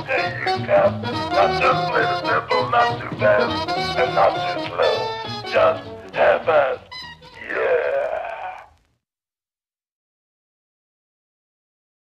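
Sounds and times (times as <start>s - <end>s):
long wailing moan: 7.4s - 8.7s
person making short sounds: 7.4s - 8.8s.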